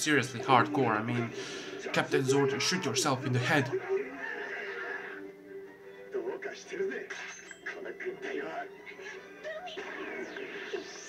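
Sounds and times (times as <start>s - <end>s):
background music with held note: 5.2s - 6.3s.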